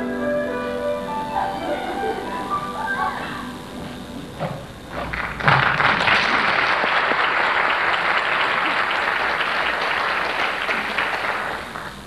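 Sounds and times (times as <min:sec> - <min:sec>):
audience applauding: 0:04.9 - 0:12.0.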